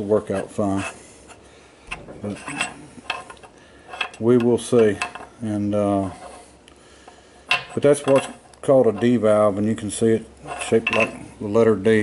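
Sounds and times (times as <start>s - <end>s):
metal parts clinking on steel bench: 2.2s - 5.3s, 7.5s - 8.4s, 10.5s - 11.2s.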